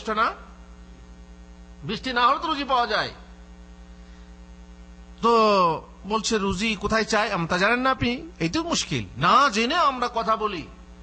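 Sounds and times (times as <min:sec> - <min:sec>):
electrical mains hum: 0:00.0 - 0:11.0
man speaking: 0:01.8 - 0:03.3, 0:05.2 - 0:10.8.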